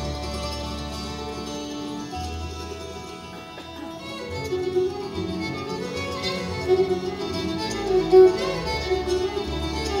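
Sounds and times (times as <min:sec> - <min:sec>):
bluegrass string band playing: 0:00.0 - 0:10.0.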